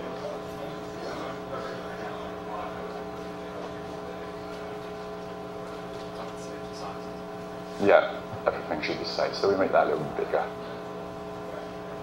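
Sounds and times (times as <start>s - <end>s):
steady hum of held tones: 0.0s - 12.0s.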